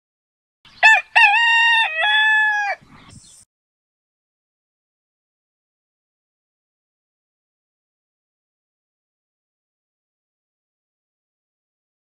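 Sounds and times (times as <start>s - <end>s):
rooster crowing: 0.8s - 2.9s.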